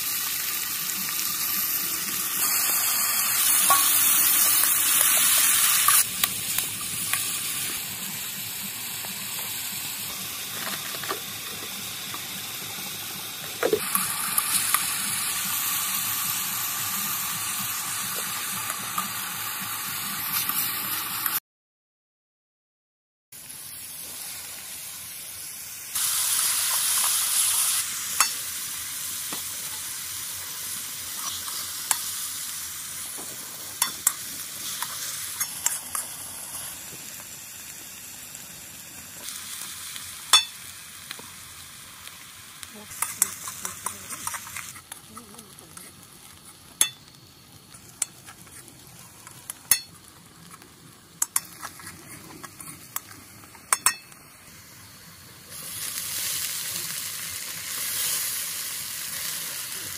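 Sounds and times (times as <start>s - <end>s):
food sizzling in oil: 0.0s - 21.4s, 23.4s - 59.9s
spoon scraping pan: 51.2s - 53.2s.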